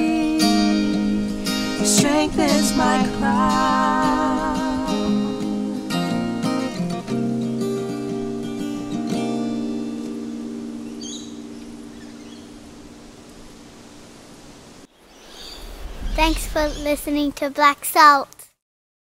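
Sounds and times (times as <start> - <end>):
acoustic guitar strums ringing: 0.4 - 13.1
bird chirping: 10.8 - 12.7, 14.9 - 17.3.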